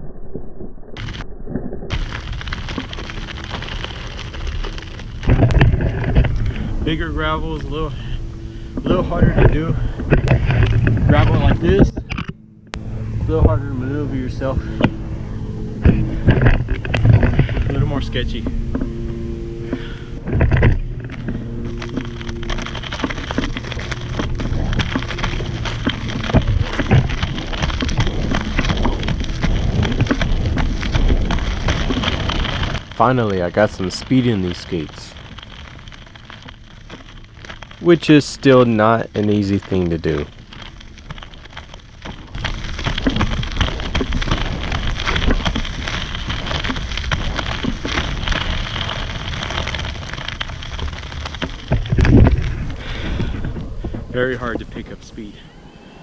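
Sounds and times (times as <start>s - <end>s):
skate wheels crunching on gravel: 1.0s - 1.2s, 1.9s - 12.0s, 13.2s - 56.0s
stones clicking under wheels: 1.0s - 1.2s, 1.9s - 12.4s, 15.7s - 19.0s, 19.7s - 55.5s.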